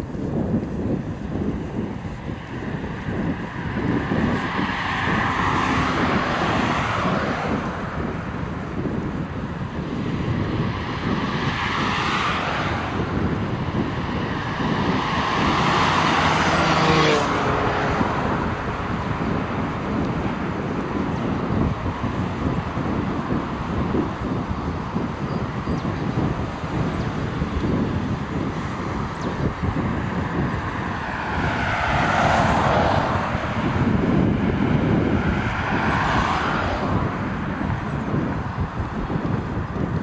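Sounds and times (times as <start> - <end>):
highway traffic passing: 0.0 - 40.0
wind on microphone: 0.0 - 40.0.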